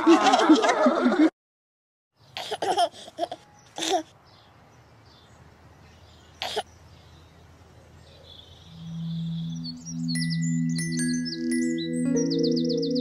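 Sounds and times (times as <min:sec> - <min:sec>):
bird-like chirps: 0:03.4 - 0:13.0
soft background music: 0:08.7 - 0:13.0.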